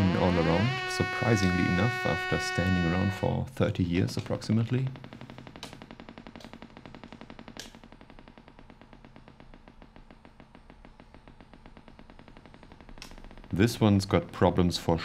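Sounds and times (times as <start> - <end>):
low ticking synthesizer buzz: 0.0 - 15.0.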